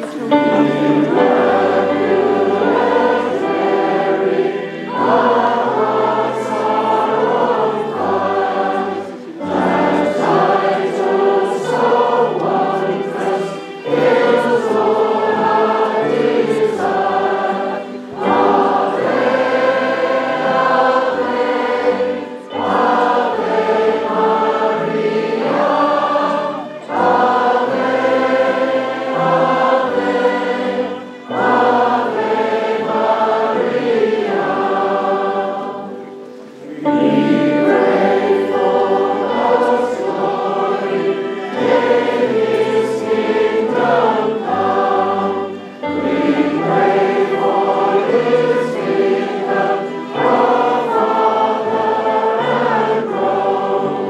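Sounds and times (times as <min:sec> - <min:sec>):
choir and congregation singing hymn: 0:00.0 - 0:54.0.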